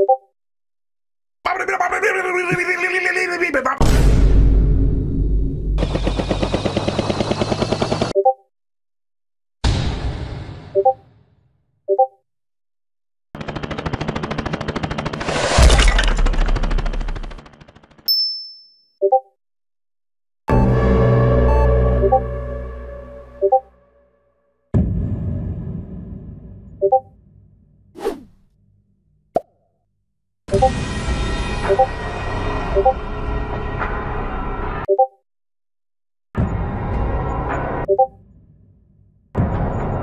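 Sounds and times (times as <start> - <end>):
rapid rattle of sharp pulses: 13.4 - 18.1
music: 20.5 - 24.5.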